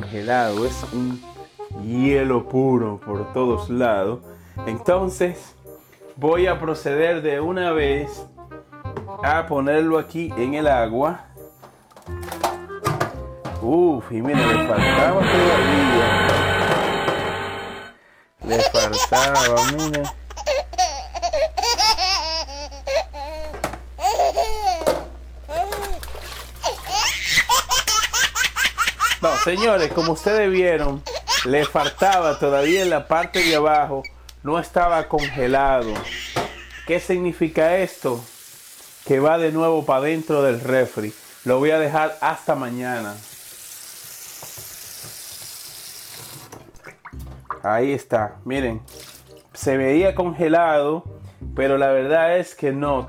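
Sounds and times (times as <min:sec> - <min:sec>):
faucet running into sink: 0:37.6 - 0:47.4.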